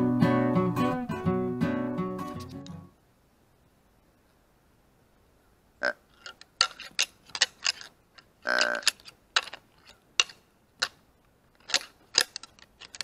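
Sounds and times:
deer grunt call: 5.8 - 6.1, 8.4 - 9.0
sharp clicks and knocks: 6.1 - 13.0.

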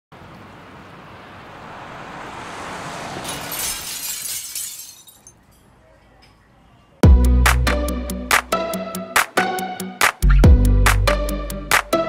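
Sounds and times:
glassy crash: 3.2 - 5.4.

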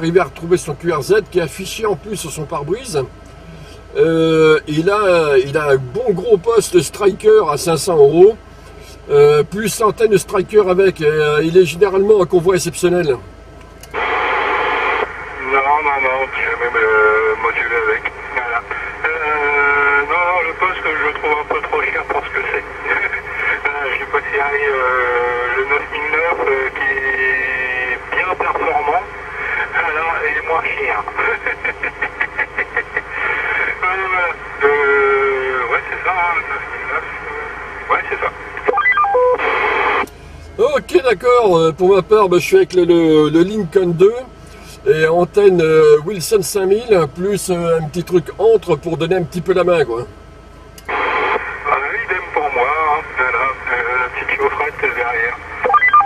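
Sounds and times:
garbled voice over radio: 15.4 - 40.0, 51.0 - 56.0
steady held tone: 45.0 - 56.0
radio hiss burst: 50.9 - 55.8.

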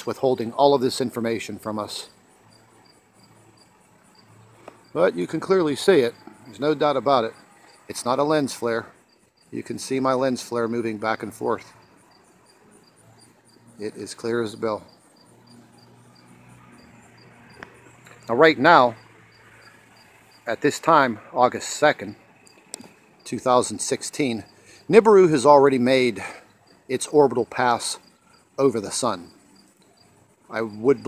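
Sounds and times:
cricket chirping: 0.0 - 31.0.

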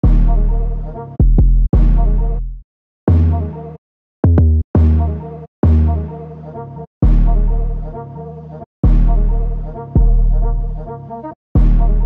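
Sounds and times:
deep bass hits: 0.0 - 0.5, 1.2 - 3.4, 8.9 - 9.3, 11.6 - 12.0.

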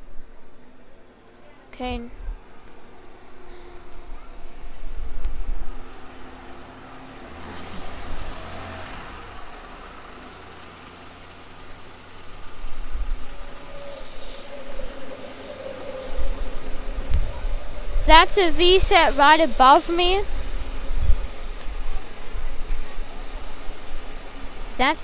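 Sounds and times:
bus engines pulling away: 0.0 - 25.0
electric train rumbling: 0.0 - 25.0
steady whine: 11.2 - 25.0.

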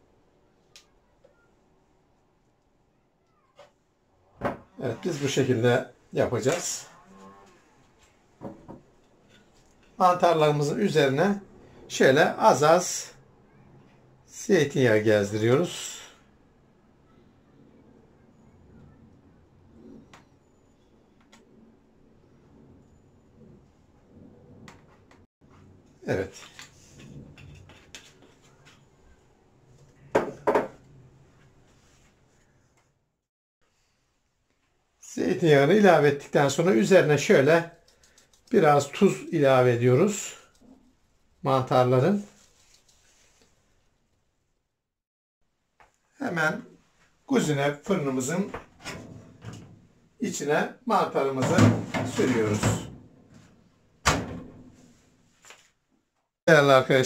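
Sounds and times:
kitchenware knocking on counter: 30.1 - 30.8.

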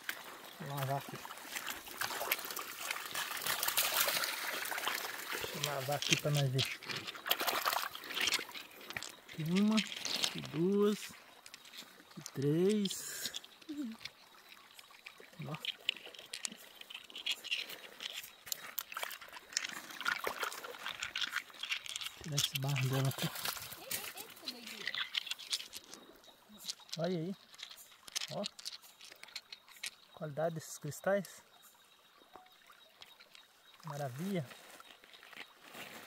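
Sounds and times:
water splashing and trickling: 0.0 - 36.0
stones clicking together: 3.4 - 30.0.

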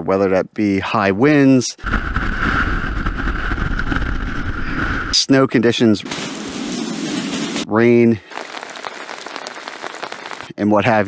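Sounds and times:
strong wind buffeting microphone: 1.8 - 5.2.

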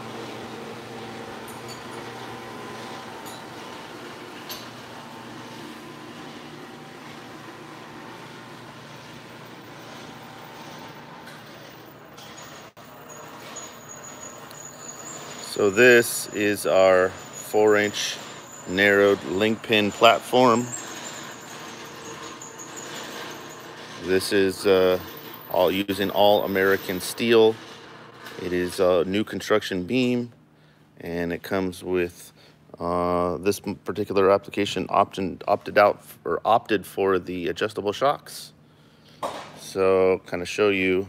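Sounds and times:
ventilation hum and hiss: 23.8 - 41.0.

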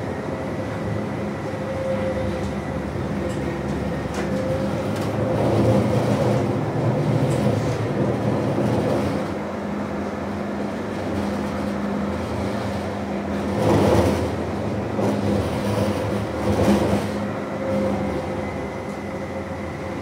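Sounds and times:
tram rolling rumble: 0.0 - 20.0.

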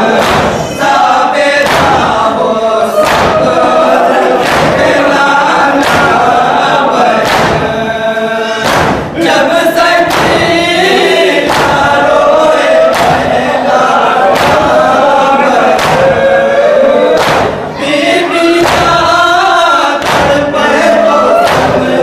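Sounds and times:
men chanting a lament: 0.0 - 22.0
hands striking chests: 0.1 - 0.6, 1.6 - 2.2, 3.0 - 3.7, 4.4 - 5.1, 5.8 - 6.3, 7.2 - 7.8, 8.6 - 9.2, 10.0 - 10.6, 11.4 - 12.0, 12.9 - 13.3, 14.3 - 14.8, 15.7 - 16.2, 17.1 - 17.6, 18.6 - 19.1, 20.0 - 20.5, 21.4 - 22.0.

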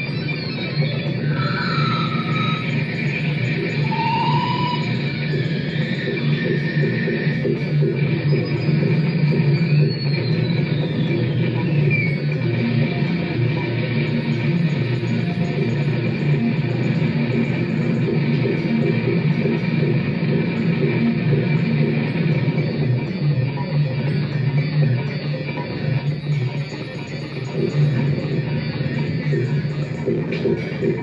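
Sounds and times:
electronic drone: 0.0 - 31.0
high whistling tone: 1.2 - 5.1.

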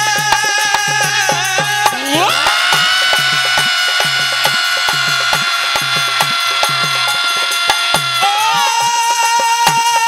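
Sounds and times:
hand drum rhythm: 0.0 - 10.0
man singing a long note: 0.0 - 10.0.

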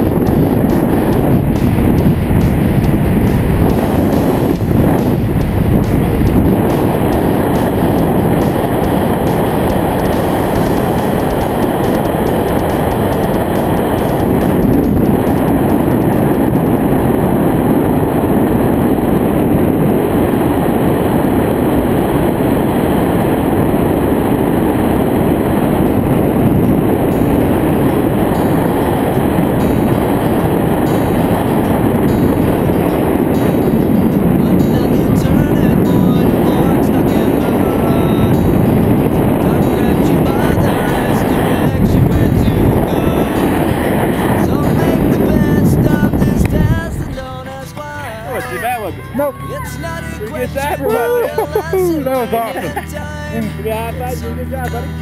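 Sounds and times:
loud wind on microphone: 0.0 - 47.6.

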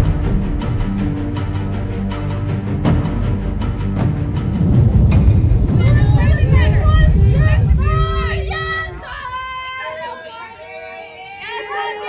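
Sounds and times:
loud low rumble: 3.0 - 9.8
high voices chanting: 5.7 - 12.0.

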